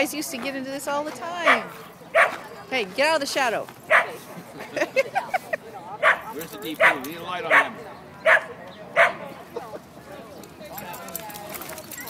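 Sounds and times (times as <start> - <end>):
small dog barking: 1.4 - 2.4, 3.9 - 4.2, 6.0 - 9.2.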